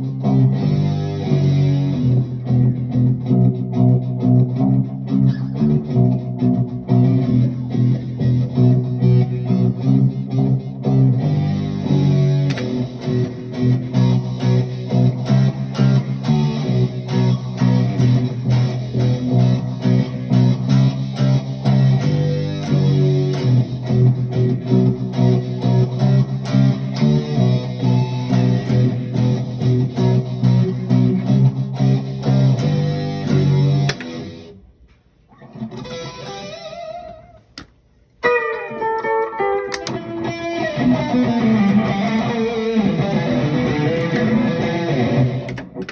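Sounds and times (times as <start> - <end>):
electric guitar single notes: 0.0 - 34.7, 38.2 - 45.9
electric guitar low riff: 0.0 - 37.6, 38.2 - 45.9.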